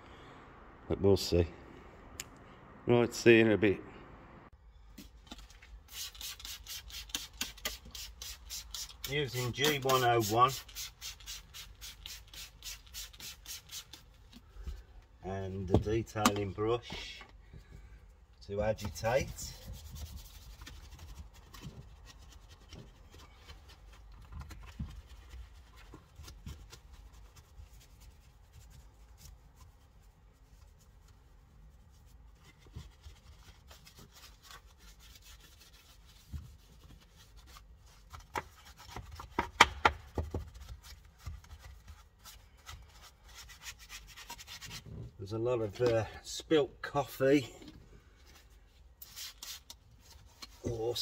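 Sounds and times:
brush scrubbing plastic trim: 5.9s - 14.5s.

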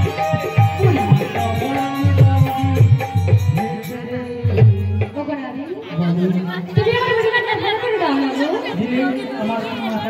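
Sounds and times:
amplified sing-song voice over pa: 0.0s - 10.0s
audience chatter: 0.0s - 10.0s.

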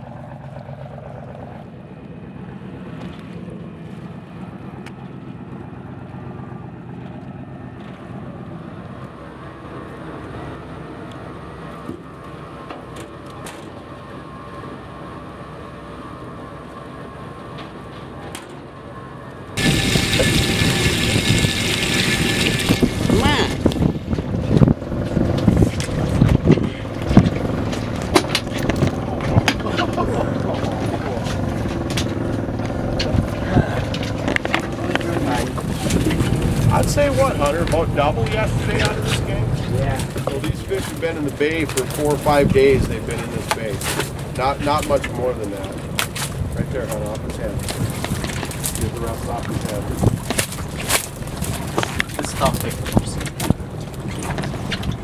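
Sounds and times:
boat engine running: 0.0s - 55.0s
water splashing: 19.6s - 24.1s, 47.4s - 55.0s.

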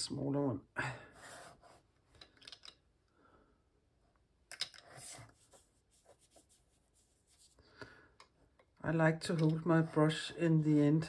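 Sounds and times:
brush scraping on paper: 4.9s - 7.7s.

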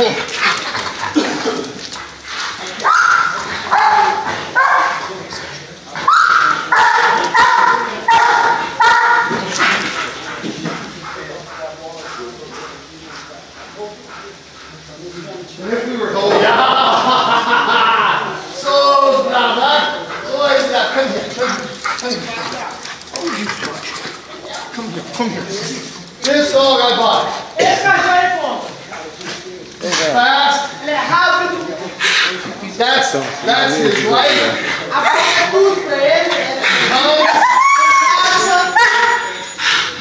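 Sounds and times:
people talking: 0.0s - 40.0s
dog barking high-pitched: 2.8s - 5.1s, 6.0s - 9.4s, 38.3s - 39.4s.

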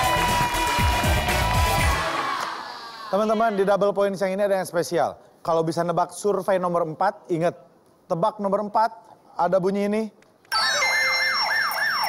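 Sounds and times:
siren-like sweeping alarm tones: 10.5s - 12.0s.

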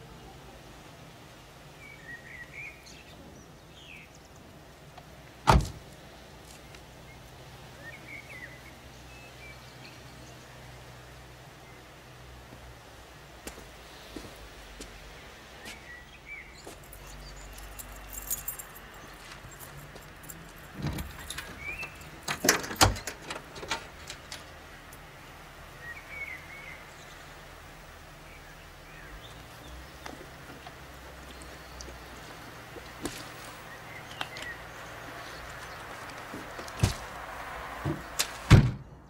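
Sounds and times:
car door shutting: 5.4s - 5.8s, 37.8s - 38.9s
dull thump: 5.5s - 5.8s, 36.8s - 37.1s, 37.8s - 38.8s
metallic jingling and clicking: 16.8s - 25.0s.

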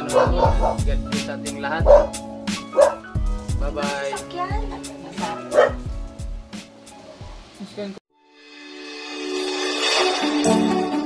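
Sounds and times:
dog barking: 0.0s - 0.8s, 1.8s - 3.1s, 5.2s - 5.8s
voice over music on television: 0.0s - 2.2s.

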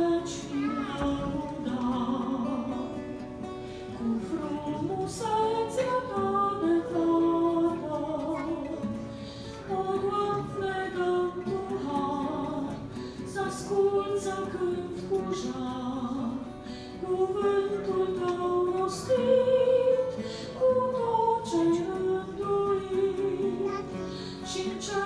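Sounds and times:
guitars and plucked strings: 0.0s - 25.0s
woman singing a hymn: 0.0s - 25.0s.

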